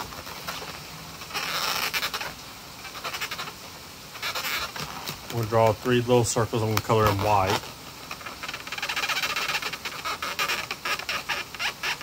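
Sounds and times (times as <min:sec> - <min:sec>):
marker scratching on balloon: 0:00.0 - 0:03.6, 0:04.2 - 0:05.8, 0:07.0 - 0:12.0.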